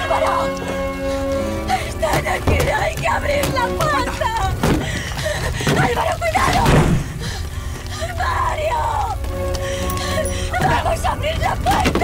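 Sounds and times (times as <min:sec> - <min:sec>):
dramatic film music: 0:00.0 - 0:12.0.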